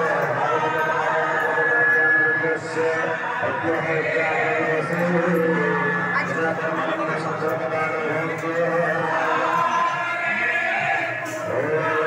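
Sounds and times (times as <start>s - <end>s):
voices chanting: 0.0s - 12.0s.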